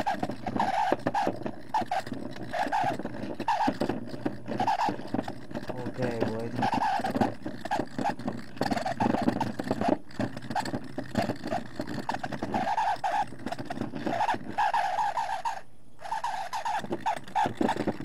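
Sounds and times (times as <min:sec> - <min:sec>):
polishing tool motor hum: 0:00.0 - 0:18.0
rock grinding on spinning wheel: 0:00.0 - 0:18.0.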